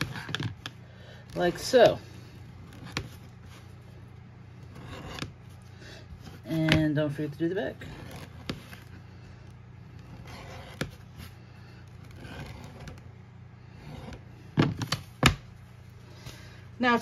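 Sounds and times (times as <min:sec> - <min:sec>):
edge beveler scraping leather: 0:01.3 - 0:03.8, 0:04.5 - 0:09.0, 0:09.8 - 0:14.3.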